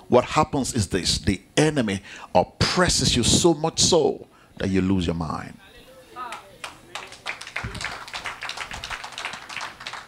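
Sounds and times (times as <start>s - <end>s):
congregation clapping: 6.3s - 10.0s.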